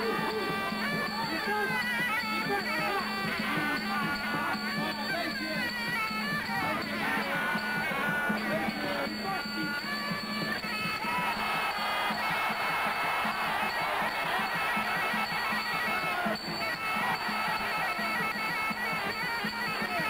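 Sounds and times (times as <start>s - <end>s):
shrill reedy pipe melody: 0.0s - 20.0s
steady drum beat: 5.6s - 20.0s.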